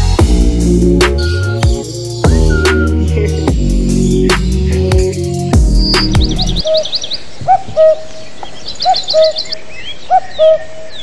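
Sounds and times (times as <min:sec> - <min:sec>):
electronic music with heavy bass: 0:00.0 - 0:06.6
whistled bird calls: 0:01.2 - 0:04.8, 0:05.8 - 0:11.0
fast high bird chirps: 0:01.2 - 0:08.0.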